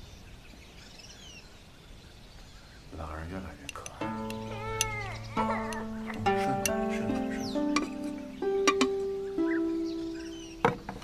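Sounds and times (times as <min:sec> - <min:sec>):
soundtrack music with held notes: 0:03.9 - 0:11.0
cat meowing: 0:04.4 - 0:06.0.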